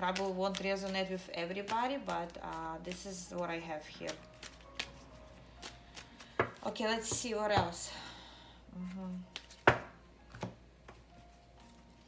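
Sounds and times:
quiet background music: 0.0 - 12.0
cards being shuffled: 3.9 - 6.7, 8.9 - 12.0.

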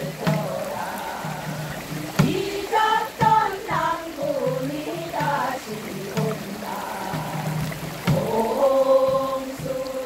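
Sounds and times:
women singing folk song: 0.0 - 10.0.

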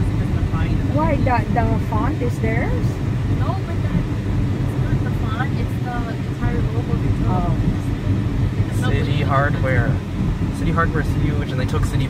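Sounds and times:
car engine and tyres rumbling: 0.0 - 12.0.

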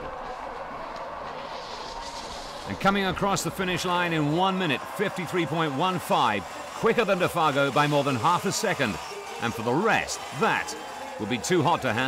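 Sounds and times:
skis hissing over snow: 1.3 - 2.8.

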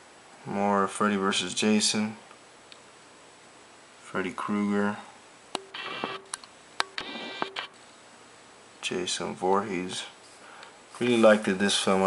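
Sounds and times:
sharp clicks: 5.5 - 7.7.

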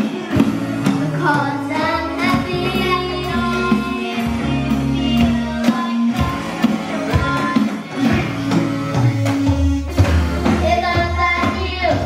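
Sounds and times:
children singing: 0.0 - 12.0
drum hits: 0.0 - 12.0
rock band playing: 0.0 - 12.0.

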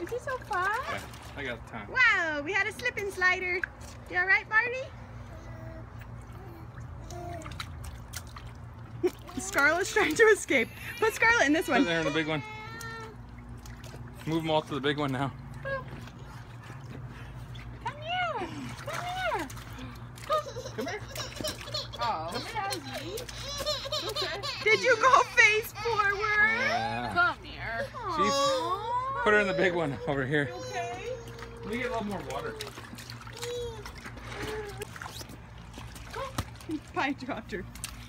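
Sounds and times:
water splashing and trickling: 0.0 - 38.0
toddlers squealing and crying: 10.7 - 13.2, 23.2 - 27.2, 27.8 - 34.9.

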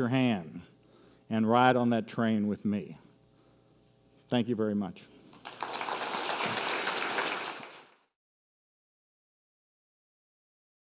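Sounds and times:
audience applauding: 5.4 - 8.1.

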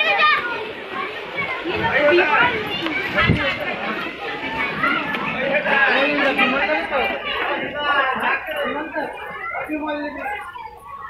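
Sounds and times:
children calling and chattering: 0.0 - 11.0
crowd talking: 0.0 - 11.0.

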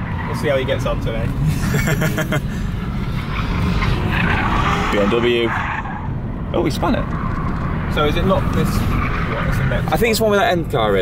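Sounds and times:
car engine and road noise: 0.0 - 11.0
person laughing: 1.5 - 2.7.

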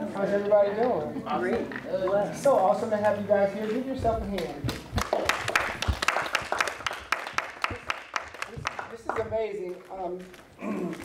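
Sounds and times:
small group applauding: 4.4 - 11.0.

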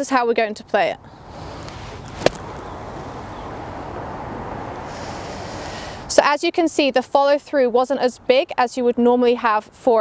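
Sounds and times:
outdoor background noise: 0.0 - 10.0
golf club hitting sand: 1.4 - 3.2.

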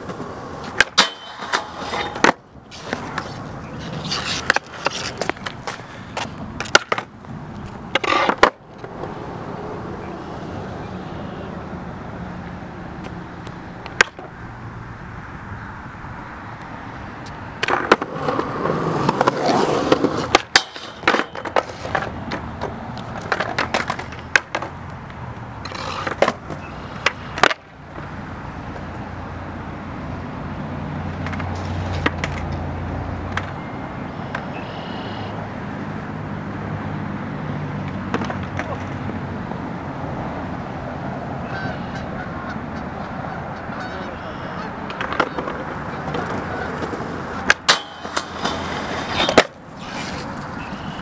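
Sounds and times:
skateboard clacking on ground: 0.0 - 10.8, 12.4 - 14.4, 16.6 - 29.2, 30.9 - 34.7, 37.8 - 39.2, 44.6 - 51.0
skateboard wheels rolling on concrete: 0.0 - 51.0
geese honking: 34.2 - 35.4, 41.4 - 46.9.

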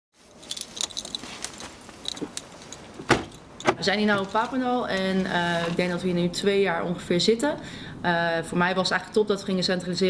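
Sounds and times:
light metallic jingling and clicks: 0.4 - 5.8.

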